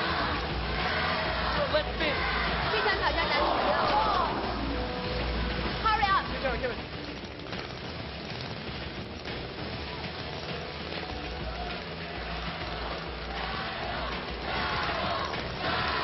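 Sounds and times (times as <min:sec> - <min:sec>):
background music: 0:00.0 - 0:16.0
noisy haze: 0:00.0 - 0:16.0.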